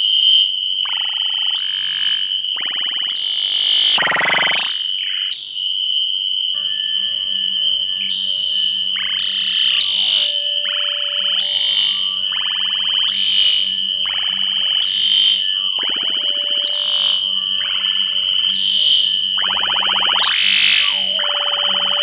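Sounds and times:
steady high tone: 0:06.6 - 0:22.0
rising synthesizer sweep: 0:14.1 - 0:22.0.

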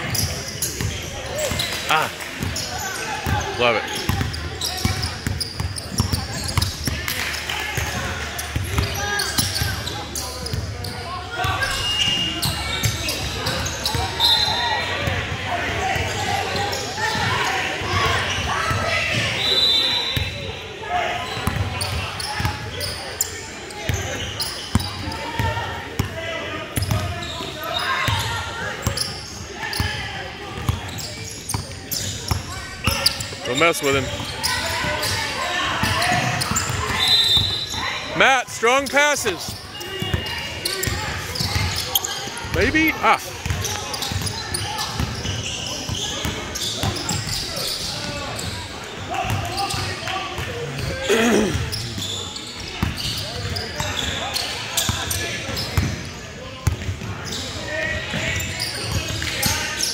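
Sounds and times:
shoe squeaks: 0:02.6 - 0:07.0, 0:08.4 - 0:14.8, 0:21.2 - 0:25.4, 0:26.8 - 0:30.0, 0:30.7 - 0:49.9, 0:51.2 - 0:55.9, 0:57.2 - 0:59.9
echoing voices: 0:49.0 - 0:51.8.

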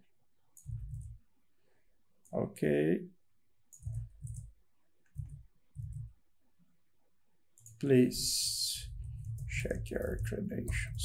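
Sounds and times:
computer key clicks: 0:03.7 - 0:04.5, 0:07.6 - 0:07.8.

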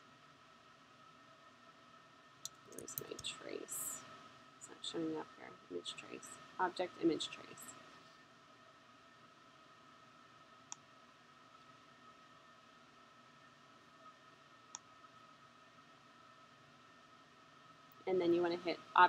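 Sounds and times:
steady hum: 0:00.0 - 0:19.0
computer mouse clicks: 0:02.4 - 0:03.4.

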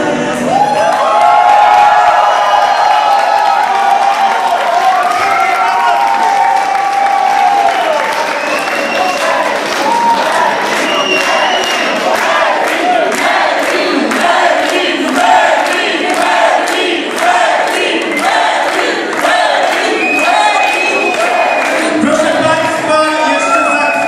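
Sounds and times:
crowd shouting and cheering: 0:00.0 - 0:24.0
rhythmic clapping: 0:03.0 - 0:23.4.

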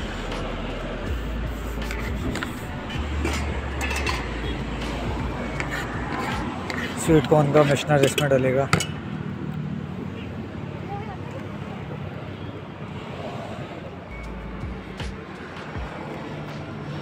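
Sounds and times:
low vehicle rumble: 0:00.0 - 0:07.8
road traffic rushing: 0:00.0 - 0:17.0.

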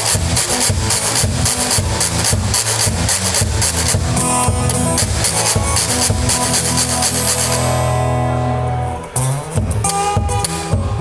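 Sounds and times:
acoustic guitar playing: 0:00.0 - 0:11.0.

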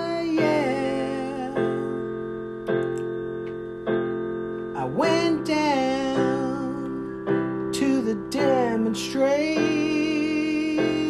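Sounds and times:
keyboard playing held chords: 0:00.0 - 0:11.0.

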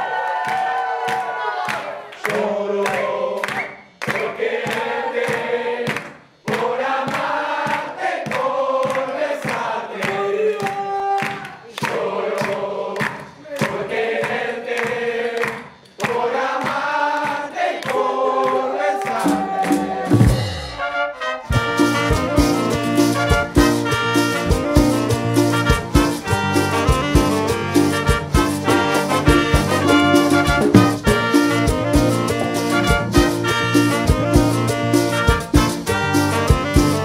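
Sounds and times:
voices singing together: 0:00.2 - 0:20.6, 0:21.6 - 0:36.9
percussion beat: 0:02.4 - 0:37.0.

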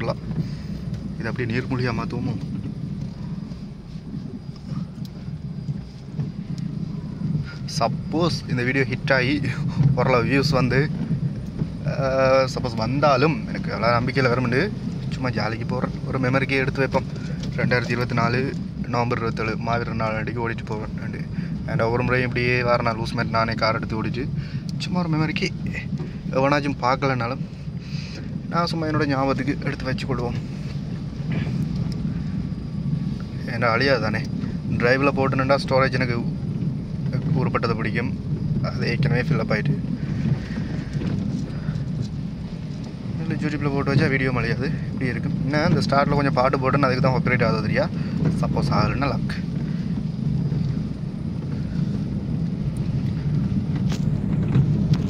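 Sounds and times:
car driving on rough road: 0:00.0 - 0:55.0
faint ticks: 0:04.5 - 0:06.7, 0:30.2 - 0:32.2.

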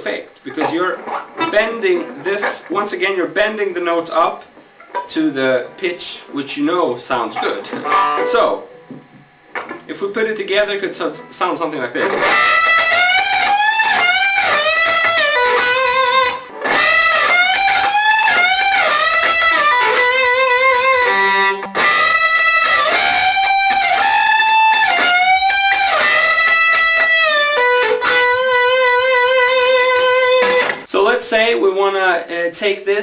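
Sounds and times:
electric guitar solo: 0:00.0 - 0:03.8, 0:04.8 - 0:08.9, 0:11.1 - 0:30.9.

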